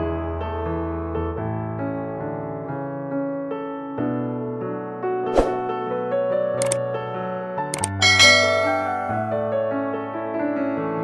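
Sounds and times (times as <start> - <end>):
soft piano music: 0.0 - 11.0
click sound effects: 6.6 - 6.8, 7.8 - 9.1.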